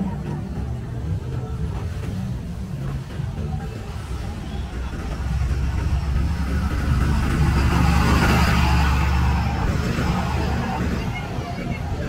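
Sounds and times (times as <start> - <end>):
road traffic: 0.0 - 12.0
vehicle passing: 3.8 - 12.0.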